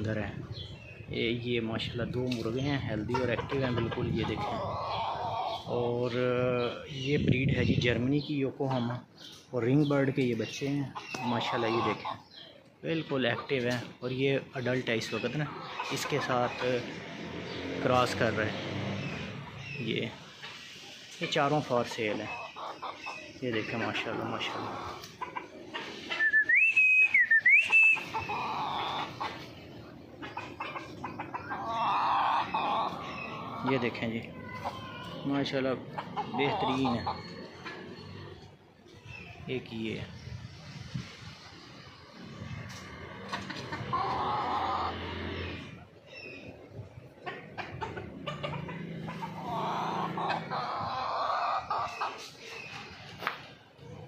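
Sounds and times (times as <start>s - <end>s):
person whistling: 26.2s - 28.0s.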